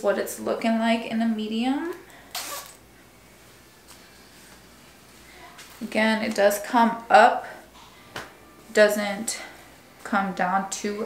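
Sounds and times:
zipper being pulled up: 2.3s - 2.8s.

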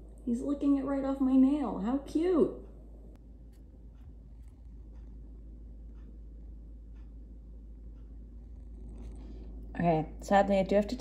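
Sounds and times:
low steady hum: 0.0s - 11.0s
faint soft ticking: 1.6s - 11.0s.

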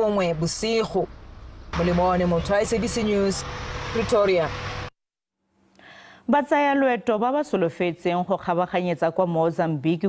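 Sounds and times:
roadside traffic noise: 0.0s - 5.0s.

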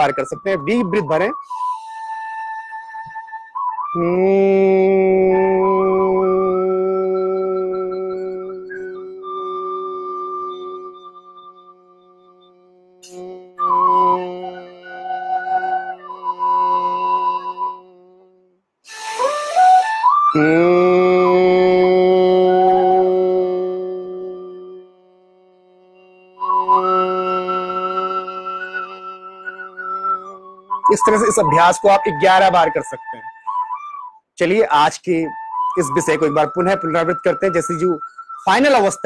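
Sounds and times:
flute holding long note: 0.0s - 34.2s, 35.2s - 39.0s
low human humming: 1.4s - 19.3s, 20.3s - 33.4s.

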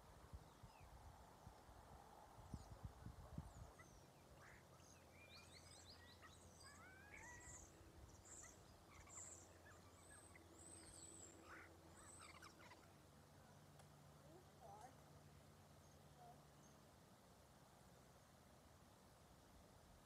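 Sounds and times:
small birds chirping and whistling: 3.5s - 12.9s.

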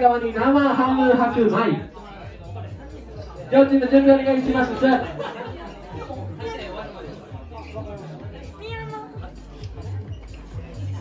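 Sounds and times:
audience chatter: 0.0s - 11.0s
quiet background music: 0.0s - 11.0s.

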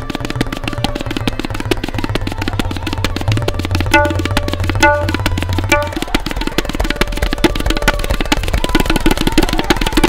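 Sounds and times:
faint sarangi melody: 0.0s - 10.0s
tabla drumming: 0.0s - 10.0s.

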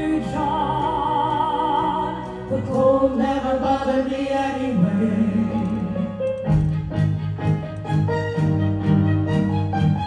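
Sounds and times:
symphony orchestra: 0.0s - 10.0s.

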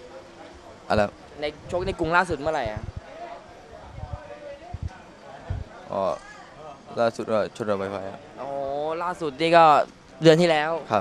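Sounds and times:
faint background voices: 0.0s - 7.0s
short low thumps: 1.6s - 3.1s, 3.9s - 5.7s.

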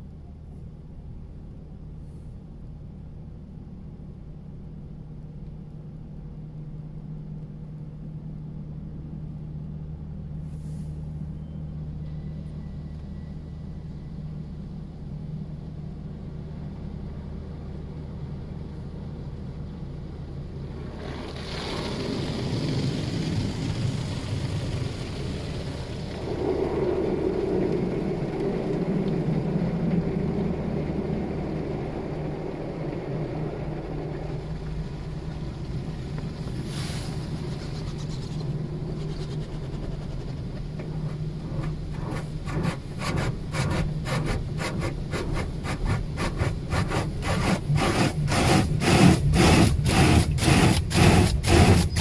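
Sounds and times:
steady low hum: 0.0s - 52.0s
cloth brushes scrubbing car: 41.4s - 52.0s.

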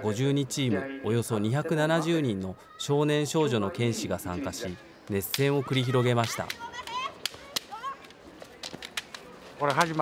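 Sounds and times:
bamboo swords clashing: 5.2s - 10.0s.

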